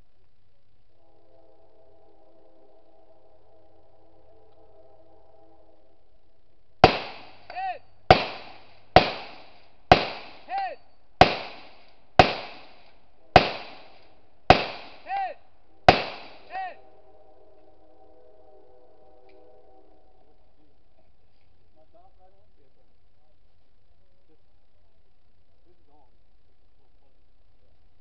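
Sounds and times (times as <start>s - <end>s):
bullet pinging steel target: 6.8s - 15.3s, 15.9s - 16.5s
rifle shots echoing: 6.8s - 15.3s, 15.9s - 16.6s.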